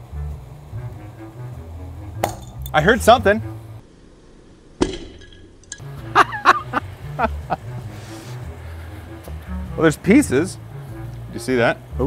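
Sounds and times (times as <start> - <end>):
person laughing: 6.0 - 7.7.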